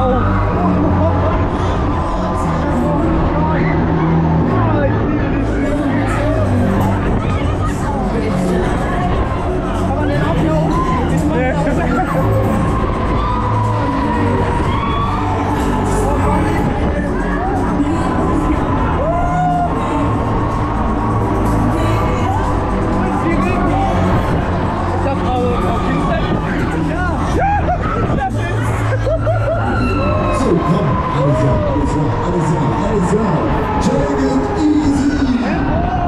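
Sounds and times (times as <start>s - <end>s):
fairground ride music with heavy bass: 0.0s - 36.0s
riders cheering and shouting: 0.0s - 36.0s.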